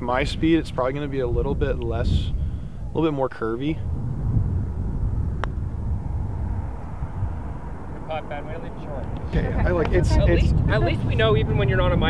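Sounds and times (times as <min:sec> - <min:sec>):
low rumble: 0:03.6 - 0:12.0
putter striking golf ball: 0:05.3 - 0:05.7.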